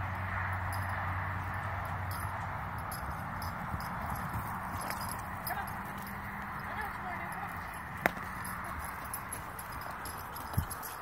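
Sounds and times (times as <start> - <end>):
horse hoofbeats on soft dirt: 0.0 - 11.0.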